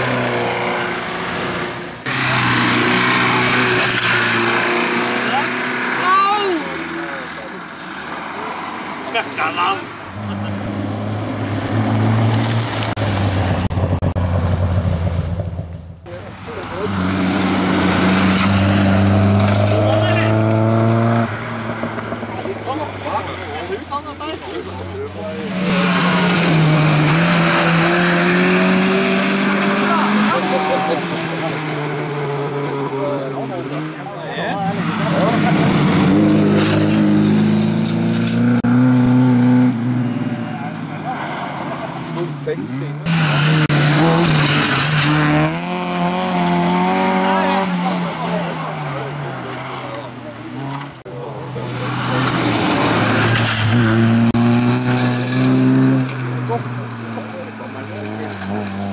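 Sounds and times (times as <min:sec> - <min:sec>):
rally cars revving past: 0:00.0 - 0:58.9.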